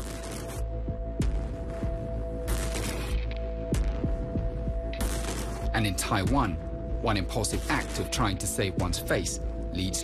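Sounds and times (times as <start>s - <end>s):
deep throbbing pulse: 0.0s - 9.7s.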